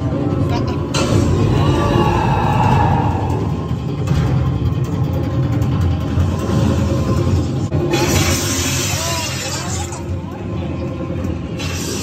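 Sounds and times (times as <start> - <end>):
deep rumbling drone: 0.0 - 12.0.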